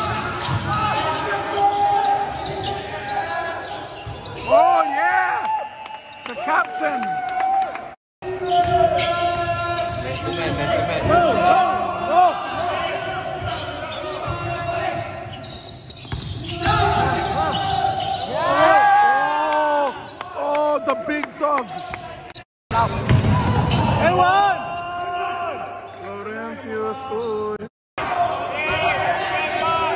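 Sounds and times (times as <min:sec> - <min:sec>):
sneaker squeaks: 0:00.0 - 0:04.9, 0:08.4 - 0:11.1, 0:12.6 - 0:19.1, 0:20.0 - 0:20.4, 0:21.3 - 0:24.1
basketball bouncing: 0:15.9 - 0:17.2.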